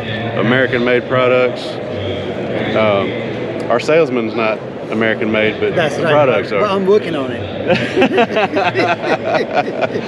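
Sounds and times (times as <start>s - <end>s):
men laughing: 7.6s - 10.0s.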